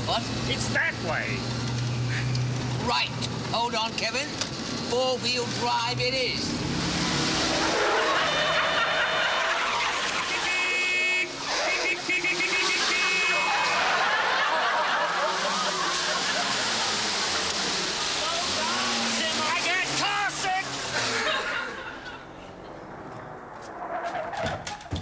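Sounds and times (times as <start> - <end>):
jeep driving off-road: 0.0 - 25.0
men shouting and yelling: 7.5 - 22.0.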